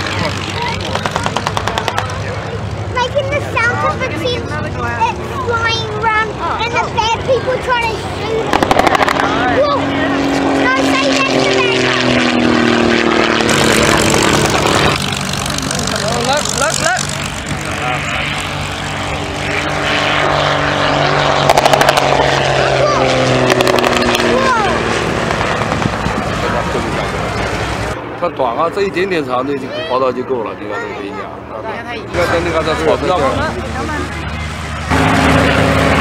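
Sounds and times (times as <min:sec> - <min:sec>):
people talking: 0:00.0 - 0:12.2, 0:15.6 - 0:19.9, 0:22.1 - 0:23.3, 0:24.2 - 0:24.9, 0:25.5 - 0:34.8
propeller plane passing by: 0:00.0 - 0:36.0
steady engine drone: 0:00.0 - 0:36.0.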